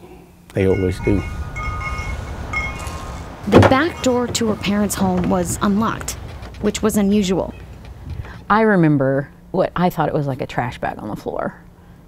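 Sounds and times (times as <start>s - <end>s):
wind chimes ringing: 0.6s - 7.8s.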